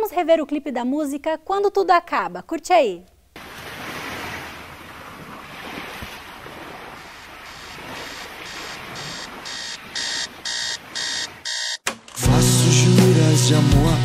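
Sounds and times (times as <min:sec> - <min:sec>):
ocean surf on a beach: 0:03.4 - 0:11.6
alarm clock beeping: 0:07.5 - 0:11.8.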